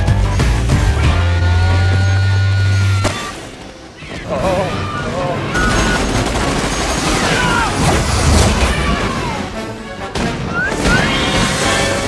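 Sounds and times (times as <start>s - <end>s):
film music score: 0.0s - 12.0s
people shouting: 1.0s - 6.3s, 6.9s - 9.8s, 10.4s - 12.0s.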